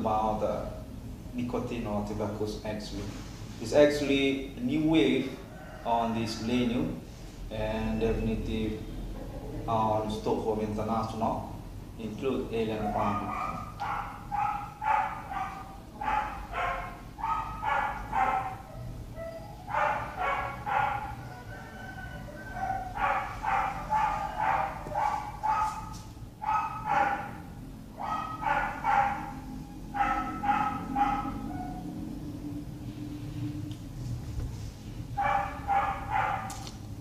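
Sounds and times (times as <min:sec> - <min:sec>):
dog barking high yaps: 0:12.8 - 0:21.3, 0:22.5 - 0:29.4, 0:30.0 - 0:31.9, 0:35.2 - 0:36.6.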